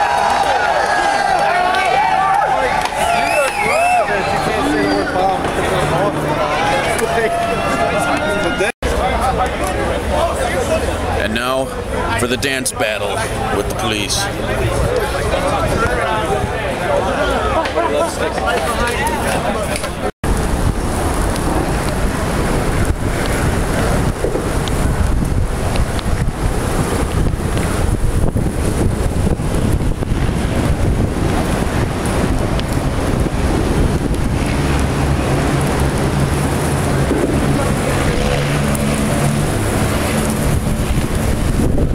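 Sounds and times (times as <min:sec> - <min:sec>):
skateboard wheels rolling on asphalt: 0:00.0 - 0:12.5, 0:13.1 - 0:41.9
wind buffeting microphone: 0:14.2 - 0:41.9.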